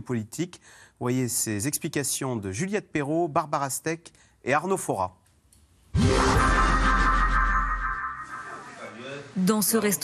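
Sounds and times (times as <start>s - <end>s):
synthetic tone cluster: 5.9s - 9.1s.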